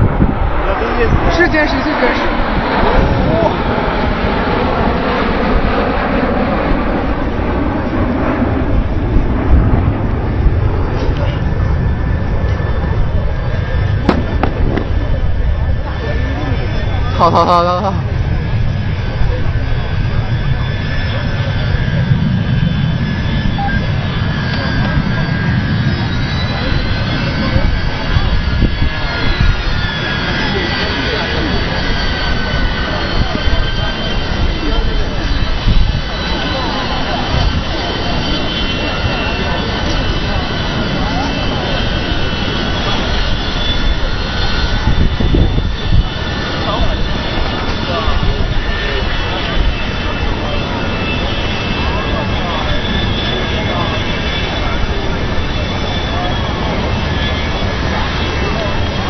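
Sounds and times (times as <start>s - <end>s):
high jet whine sliding down: 0.0s - 59.0s
jet engines rumbling: 0.0s - 59.0s.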